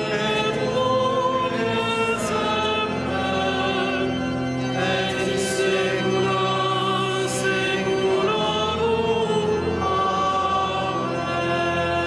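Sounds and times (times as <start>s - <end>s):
voices singing liturgical chant: 0.0s - 12.0s.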